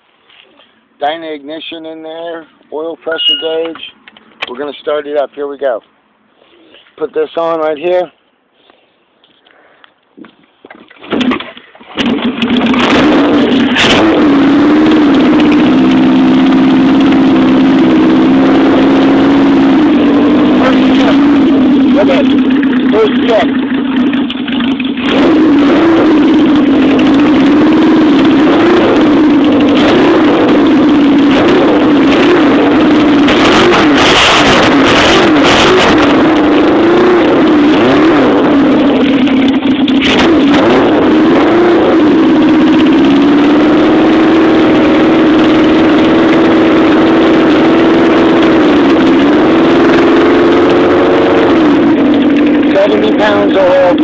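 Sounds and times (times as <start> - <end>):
motorcycle engine running: 11.2 - 54.0.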